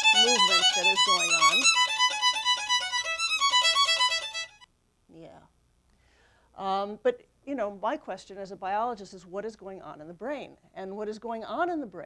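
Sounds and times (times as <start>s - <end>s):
violin playing fast bowed notes: 0.0s - 4.7s.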